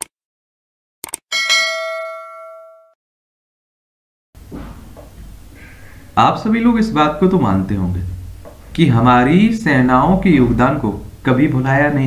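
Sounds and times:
notification bell ding: 1.3 - 3.0.

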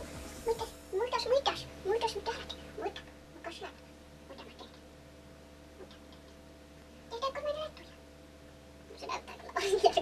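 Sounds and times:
woman's soft voice: 0.0 - 4.8.

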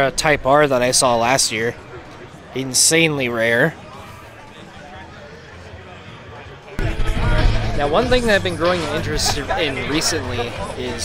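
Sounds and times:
distant outdoor crowd: 0.0 - 11.0.

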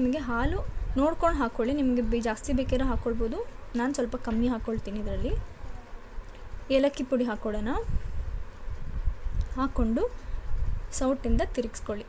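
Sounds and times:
woman speaking: 0.0 - 5.5, 6.7 - 7.9, 9.5 - 10.2, 10.9 - 12.0.

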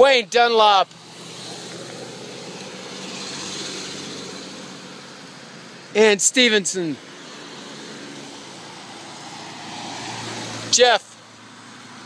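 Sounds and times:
cars driving past: 0.8 - 12.0.

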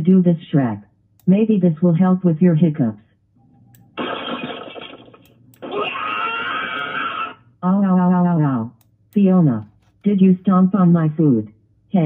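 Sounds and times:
person crying out in pain: 5.6 - 7.5.

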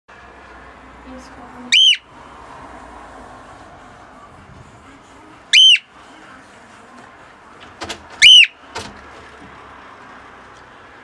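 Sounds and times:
cockatiel whistling: 1.7 - 2.1, 5.5 - 5.9, 8.2 - 8.6.

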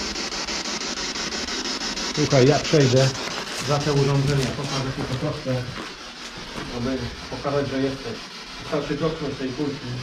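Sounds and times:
radio static sweeping stations: 0.0 - 10.0.

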